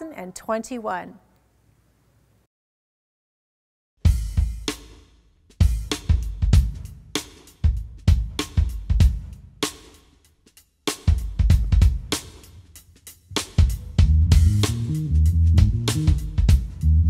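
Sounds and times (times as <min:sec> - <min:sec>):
drum kit accented hits: 0:04.0 - 0:10.0, 0:10.9 - 0:12.5, 0:13.3 - 0:17.0
kick drum: 0:05.6 - 0:07.1, 0:07.7 - 0:09.5, 0:11.1 - 0:12.1, 0:15.6 - 0:16.8.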